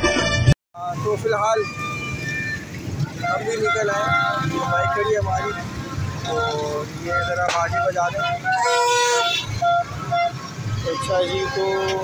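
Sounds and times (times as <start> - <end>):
motorbike engines running: 0.8 - 12.0
voices shouting: 0.8 - 12.0
plastic trumpet horn toots: 1.6 - 12.0.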